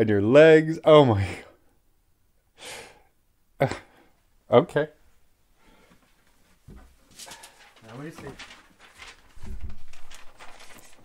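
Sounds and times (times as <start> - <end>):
breathing: 2.6 - 3.1, 5.6 - 6.2, 7.1 - 7.8
man murmuring: 3.6 - 3.9
breathy rustle: 7.0 - 9.4.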